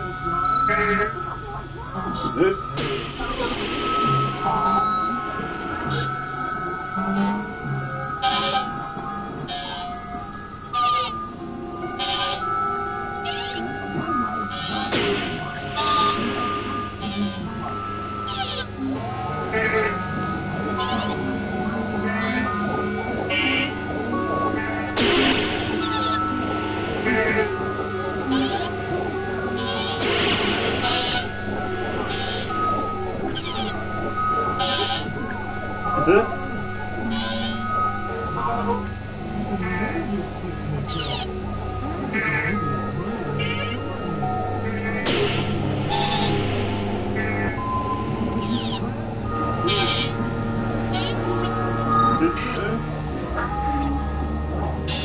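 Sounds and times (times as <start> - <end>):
bleat-like warble: 0.0 - 55.0
synthesizer droning tones: 0.0 - 55.0
bursts of high hiss: 14.3 - 53.4.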